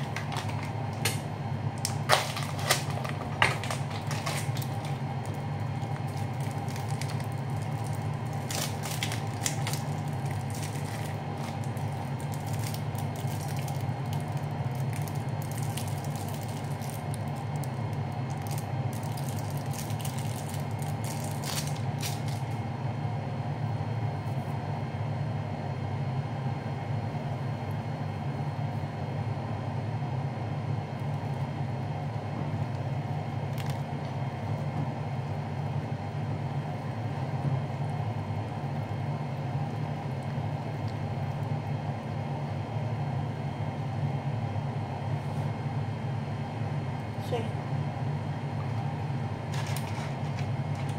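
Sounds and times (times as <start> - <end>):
plastic wrapping crinkling: 0.0 - 22.6, 49.5 - 50.9
steady low hum: 0.0 - 50.9.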